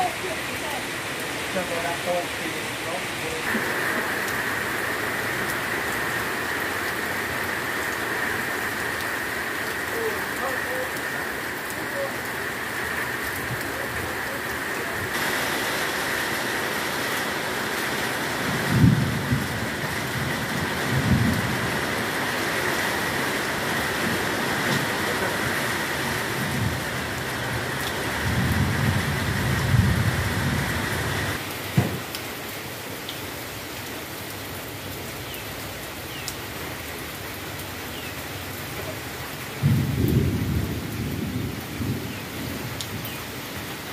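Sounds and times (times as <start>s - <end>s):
heavy rain on ground and leaves: 0.0s - 43.9s.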